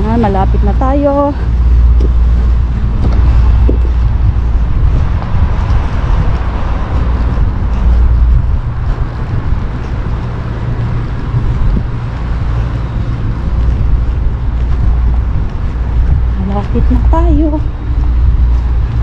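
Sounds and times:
low outdoor rumble: 0.0 - 19.0.

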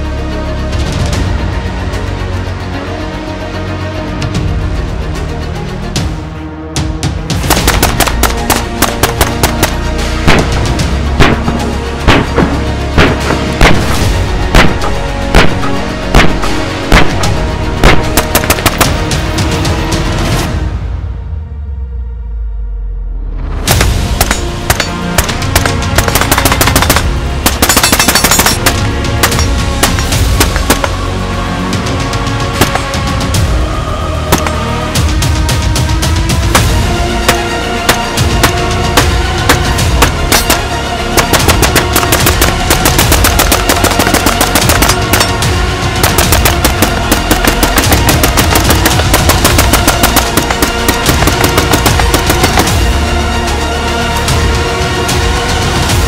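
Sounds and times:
loud background music: 0.0 - 56.0
rapid rifle gunfire: 7.5 - 19.0, 24.2 - 31.0, 32.6 - 33.0, 34.3 - 34.6, 36.5 - 38.6, 39.5 - 45.4, 46.0 - 52.9.

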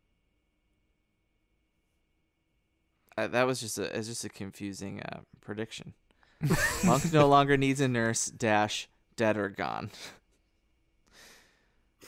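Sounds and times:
faint breath: 6.1 - 6.4, 11.1 - 12.0.

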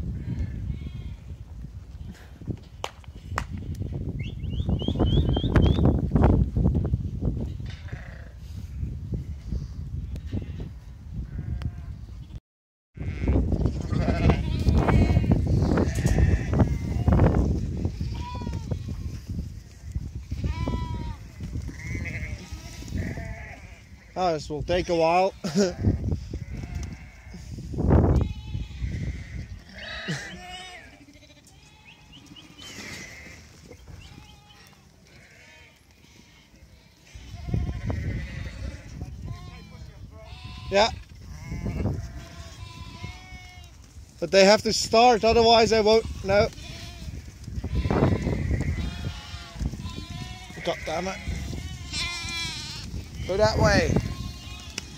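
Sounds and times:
sheep bleating: 7.7 - 8.4, 13.0 - 17.3, 19.8 - 24.2, 24.8 - 27.5, 28.2 - 43.7, 45.0 - 54.9.

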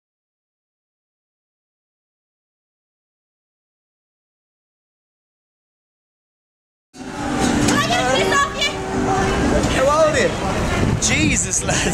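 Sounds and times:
city street traffic: 7.0 - 11.9.

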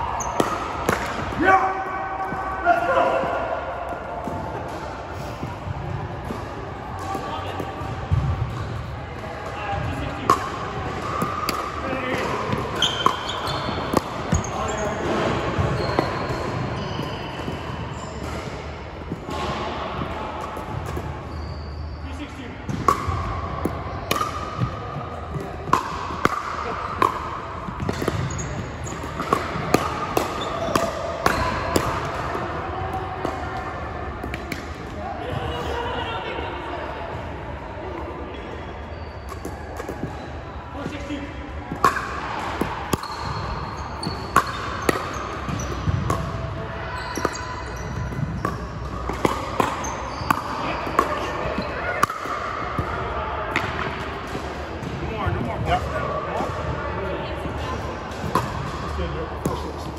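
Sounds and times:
sneaker squeaks on wooden floor: 12.5 - 19.4, 20.8 - 22.4, 27.8 - 29.4, 30.3 - 31.6, 38.8 - 39.5, 43.0 - 46.2, 46.8 - 51.9.

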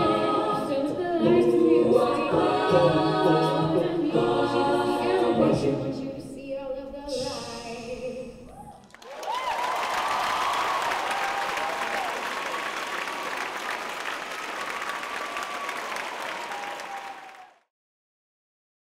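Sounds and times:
cheering whoops: 8.5 - 13.6, 14.3 - 17.6
audience applauding: 8.8 - 17.7.

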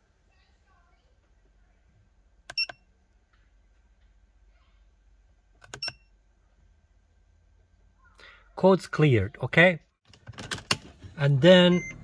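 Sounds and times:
electronic key beeps: 2.5 - 2.8, 5.7 - 6.1, 11.6 - 12.0.

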